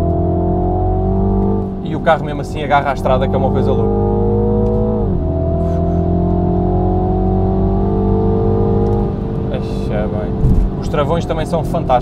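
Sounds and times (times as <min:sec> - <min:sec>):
car engine revving: 0:00.0 - 0:12.0.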